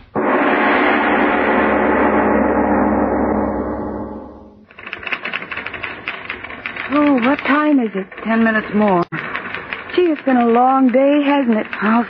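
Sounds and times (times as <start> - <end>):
manual typewriters clattering: 4.7 - 12.0.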